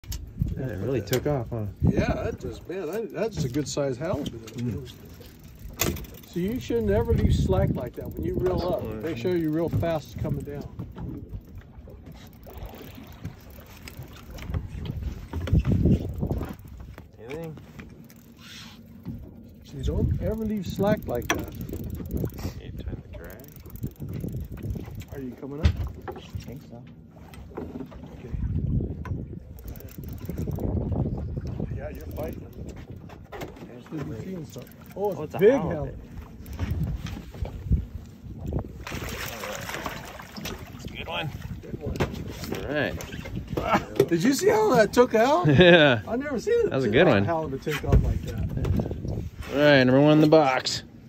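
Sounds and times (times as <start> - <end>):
wind buffeting microphone: 0.0 - 17.9, 19.0 - 49.8
fish splashing at water surface: 38.8 - 40.8.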